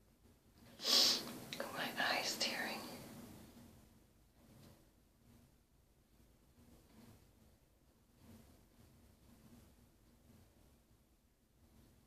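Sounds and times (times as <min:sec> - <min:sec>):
sharp hiss: 0:00.8 - 0:02.6
woman whispering: 0:01.6 - 0:03.0.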